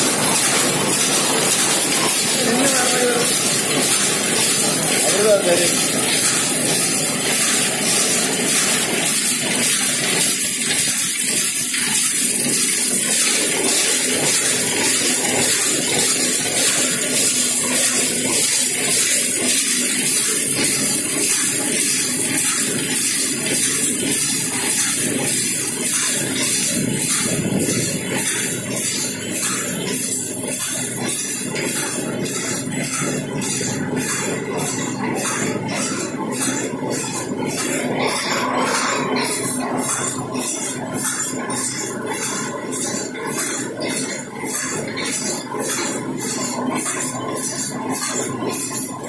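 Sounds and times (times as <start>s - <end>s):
power loom running: 0.0s - 49.0s.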